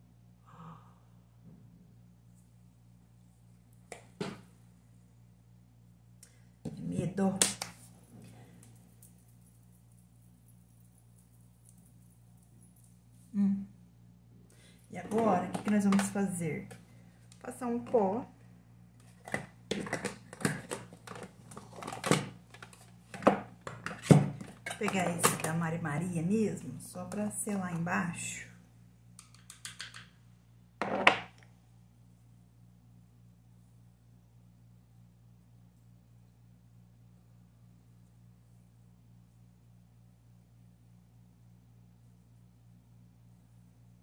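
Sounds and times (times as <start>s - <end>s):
plastic makeup cases clattering: 19.2s - 25.5s.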